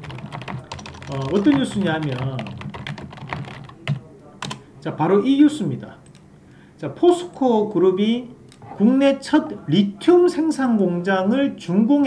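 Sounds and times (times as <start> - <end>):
computer keyboard typing: 0.0 - 4.6.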